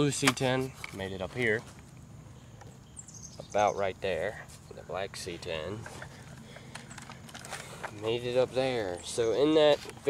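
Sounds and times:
rustling over twigs and leaf litter: 0:04.3 - 0:10.0.

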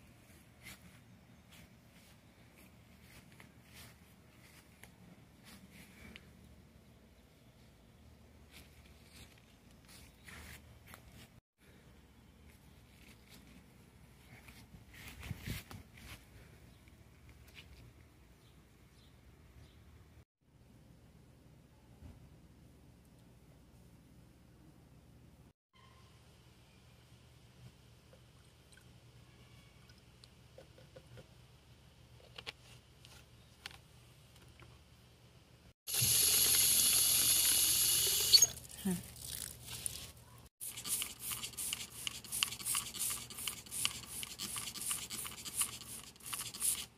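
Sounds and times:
spray bottle spritzing: 0:35.9 - 0:38.6, 0:40.6 - 0:46.9
leaves rustling in hand: 0:38.5 - 0:41.6.

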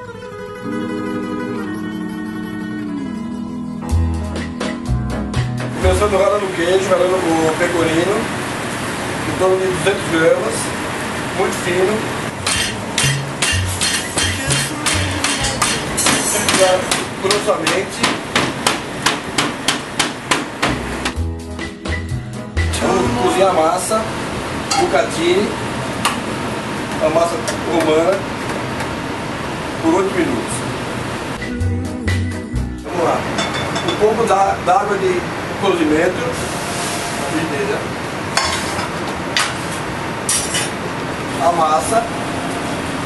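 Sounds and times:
kitchen background noise: 0:11.4 - 0:21.0, 0:32.9 - 0:34.6, 0:35.8 - 0:42.0
frying pan knocking on grate: 0:12.4 - 0:20.9.

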